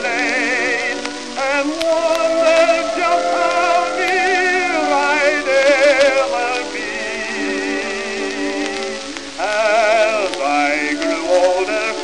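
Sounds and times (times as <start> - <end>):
old record music: 0.0 - 12.0
record surface hiss and crackle: 0.0 - 12.0.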